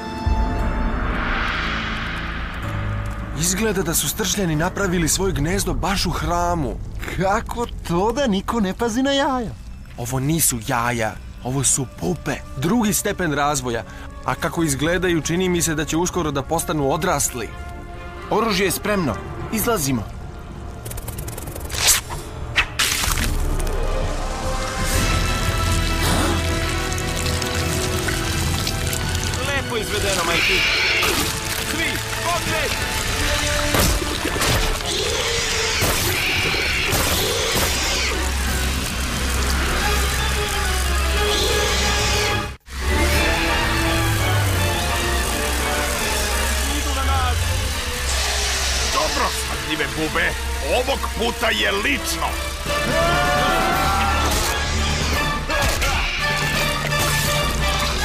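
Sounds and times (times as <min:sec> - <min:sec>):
hit and crash sound effects: 0:00.2 - 0:04.6
cartoon music score: 0:23.8 - 0:58.0.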